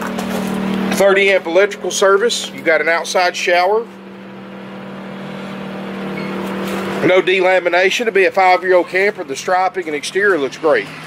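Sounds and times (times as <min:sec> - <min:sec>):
portable generator humming: 0:00.0 - 0:11.0.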